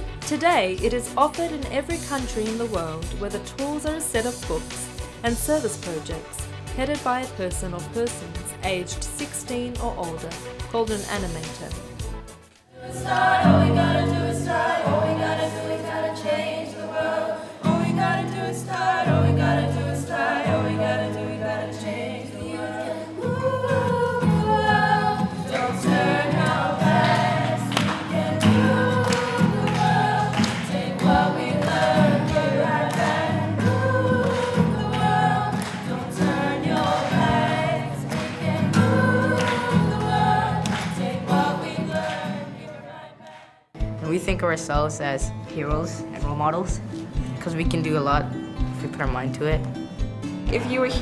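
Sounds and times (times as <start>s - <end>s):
young women singing: 12.8s - 43.3s.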